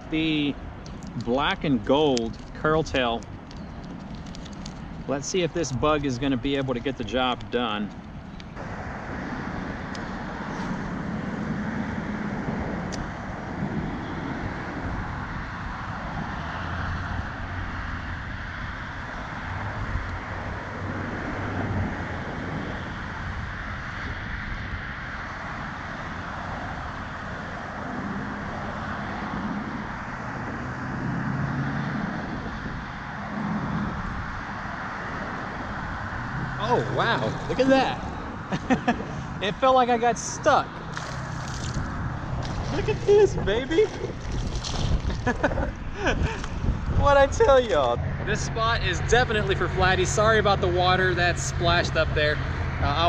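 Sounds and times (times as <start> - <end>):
wind on microphone: 0.0 - 39.9, 40.5 - 51.0
low traffic rumble: 0.0 - 53.0.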